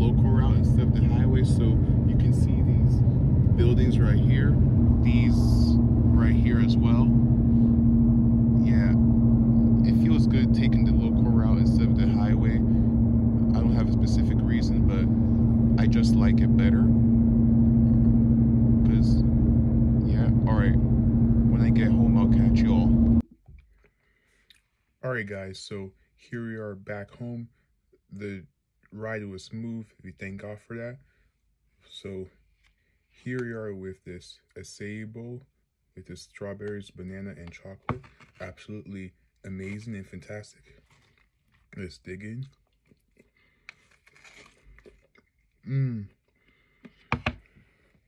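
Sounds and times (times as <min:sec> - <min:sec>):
car cabin road and engine noise: 0:00.0 - 0:23.2
chewing food: 0:39.3 - 0:48.0.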